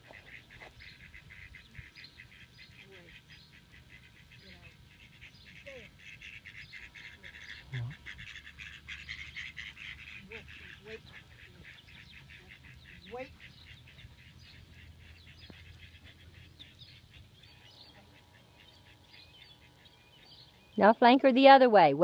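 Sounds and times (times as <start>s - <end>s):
ducks quacking: 0.0s - 20.6s.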